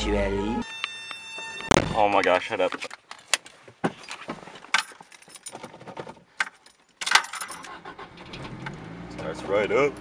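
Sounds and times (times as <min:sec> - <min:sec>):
car keys jangling: 0:04.7 - 0:08.4.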